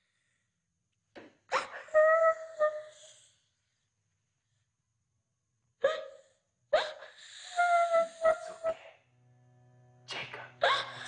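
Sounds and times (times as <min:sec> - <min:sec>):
boy sobbing: 0:06.8 - 0:08.7.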